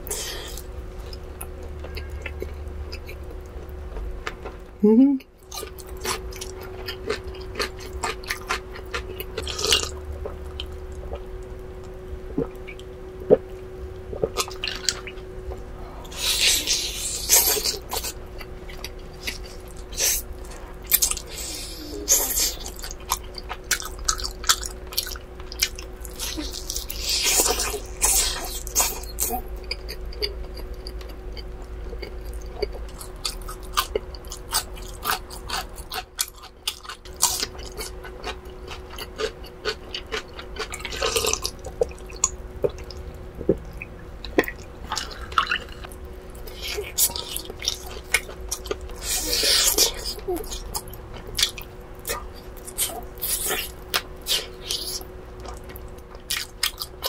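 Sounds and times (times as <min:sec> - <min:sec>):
faint steady hum: 0:00.0 - 0:57.0
chewing and mouth smacks: 0:22.4 - 0:57.0.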